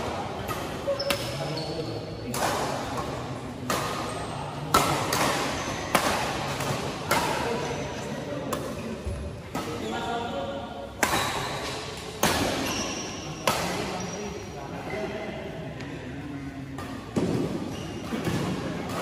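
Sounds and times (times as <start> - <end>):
rackets striking shuttlecock: 2.3 - 7.7, 11.0 - 14.0.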